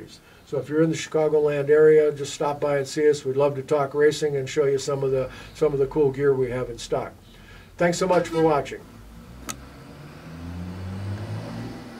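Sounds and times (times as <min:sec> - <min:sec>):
low engine hum: 0:09.0 - 0:11.9
sharp click: 0:09.4 - 0:09.6.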